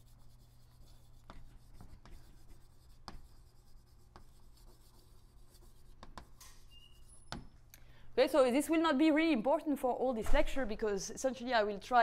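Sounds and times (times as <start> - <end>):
chalk scratching on blackboard: 0.0 - 7.4
low room hum: 0.0 - 12.0.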